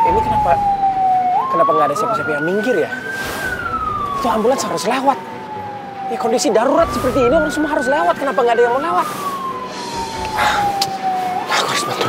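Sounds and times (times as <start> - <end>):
ambulance siren wailing: 0.0 - 12.0.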